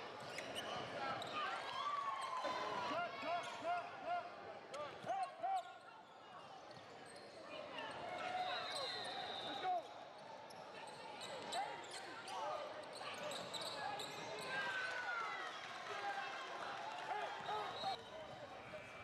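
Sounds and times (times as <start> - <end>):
spectators' voices: 0.0 - 19.0.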